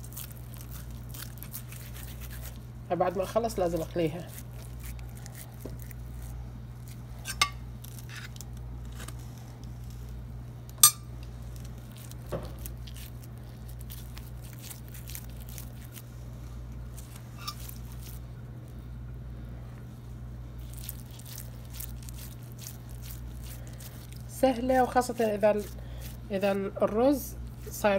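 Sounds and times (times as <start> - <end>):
wet hands patting dough: 0.0 - 6.3, 20.6 - 27.9
steady low hum: 0.0 - 27.9.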